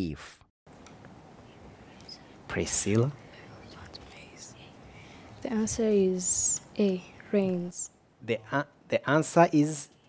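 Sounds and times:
faint whispering: 1.4s - 7.4s
person speaking: 1.8s - 10.0s.

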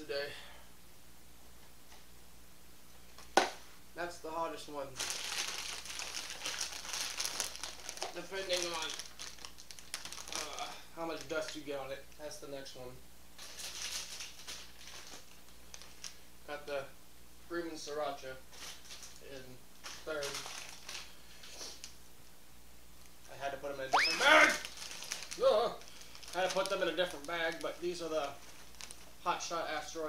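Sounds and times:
chip bag crinkling: 4.9s - 11.6s, 13.4s - 16.3s, 19.8s - 21.9s, 24.2s - 29.2s.

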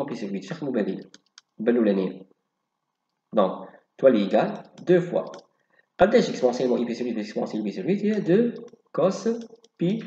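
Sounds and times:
person speaking: 0.0s - 2.2s, 3.3s - 10.0s.

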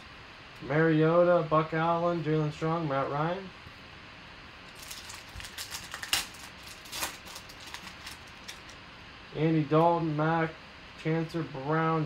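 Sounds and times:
card pack wrapper tearing and crinkling: 4.7s - 8.8s.

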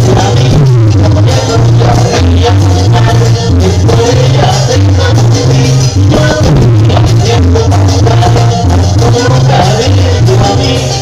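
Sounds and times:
bass line: 0.0s - 11.0s
live cumbia band playing: 0.0s - 11.0s
person singing: 0.0s - 11.0s.

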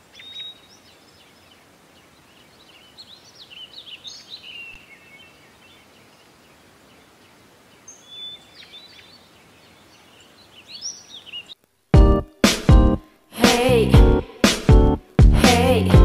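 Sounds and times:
birds chirping: 0.0s - 12.2s
faint steady hiss: 0.0s - 15.9s.

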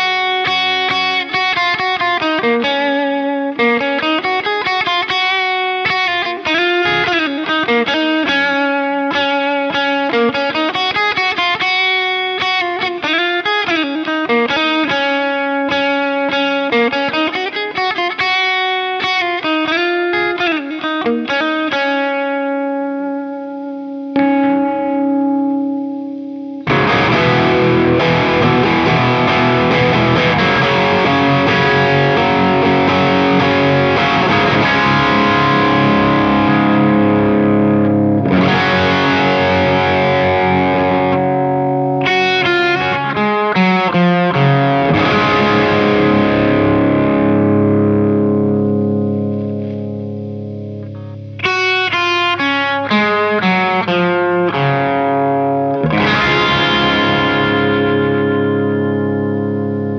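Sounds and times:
distorted electric guitar: 0.0s - 59.9s.

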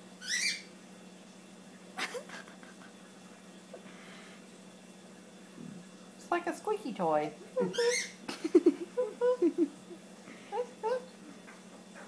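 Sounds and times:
lizard squeaking: 0.2s - 0.7s, 7.6s - 8.2s.

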